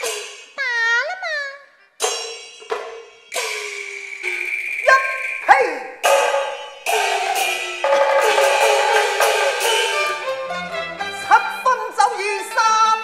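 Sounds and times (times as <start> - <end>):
struck percussion strokes ringing: 0.0 - 0.8, 2.0 - 10.6
opera instrumental ensemble: 0.0 - 13.0.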